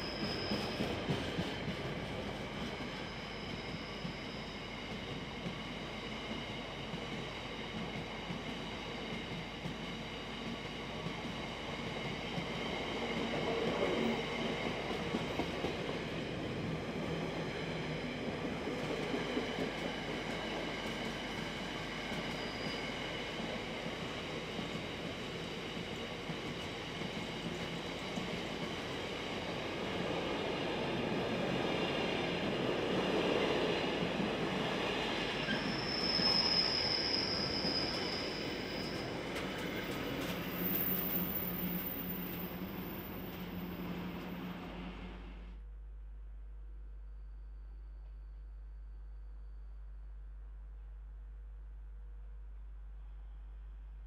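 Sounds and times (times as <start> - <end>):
wheel squeal: 0.0 - 1.6, 22.1 - 23.0, 35.4 - 42.3
train wheels rumbling on rail: 0.0 - 45.5.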